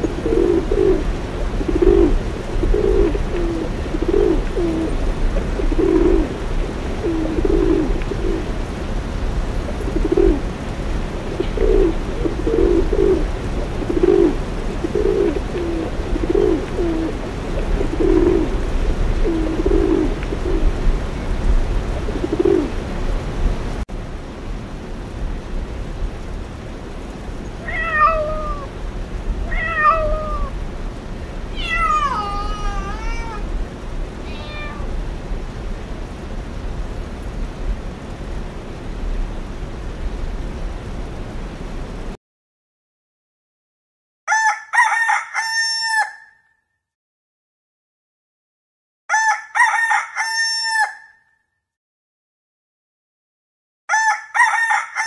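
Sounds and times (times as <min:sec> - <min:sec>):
pigeons cooing: 0:00.0 - 0:08.6, 0:09.6 - 0:10.5, 0:11.2 - 0:20.7, 0:22.0 - 0:22.8, 0:27.8 - 0:28.7, 0:29.6 - 0:30.6, 0:31.6 - 0:33.5
cat meowing: 0:27.6 - 0:28.7, 0:29.5 - 0:30.5, 0:31.5 - 0:33.5, 0:34.2 - 0:35.0.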